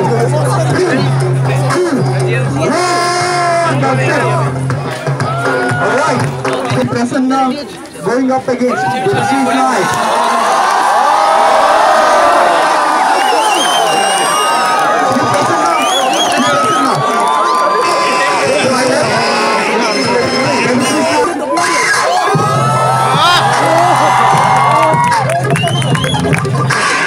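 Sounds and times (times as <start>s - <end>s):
crowd cheering and shouting: 0.0s - 7.3s, 8.1s - 27.0s.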